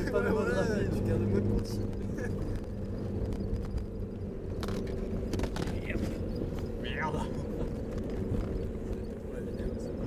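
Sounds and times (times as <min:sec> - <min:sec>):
diesel engine running: 0:00.0 - 0:10.0
engine knocks and rattles: 0:00.0 - 0:10.0.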